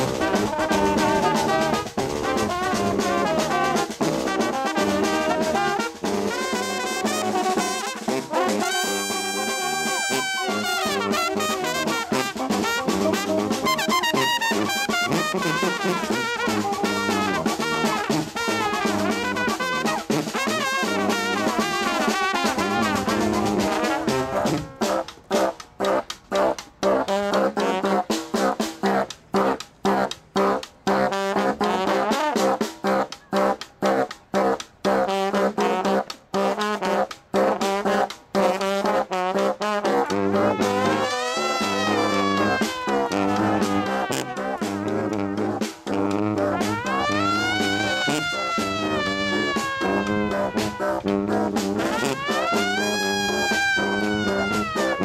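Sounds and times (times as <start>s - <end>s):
brass band playing: 0.0s - 55.0s.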